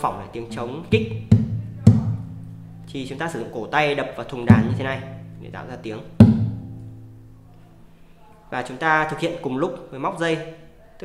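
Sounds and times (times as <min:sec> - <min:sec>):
guitar chord ringing: 0:00.0 - 0:08.0
guitar body slap thump: 0:00.9 - 0:02.4, 0:04.5 - 0:05.5, 0:06.2 - 0:07.0.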